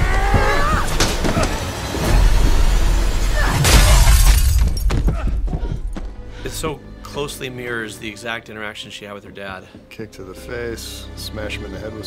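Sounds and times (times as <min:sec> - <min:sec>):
loud smash with shattering: 0:03.5 - 0:04.9.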